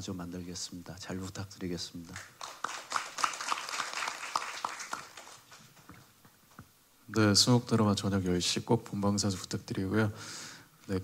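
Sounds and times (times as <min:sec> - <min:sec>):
small audience applause: 0:02.1 - 0:05.6.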